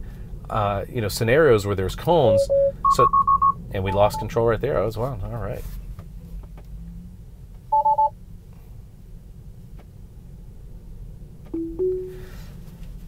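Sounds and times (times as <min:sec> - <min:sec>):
low road noise: 0:00.0 - 0:13.0
two-tone beeps: 0:02.3 - 0:04.2, 0:07.8 - 0:08.1, 0:11.6 - 0:12.3
rising two-note chime: 0:11.6 - 0:12.3.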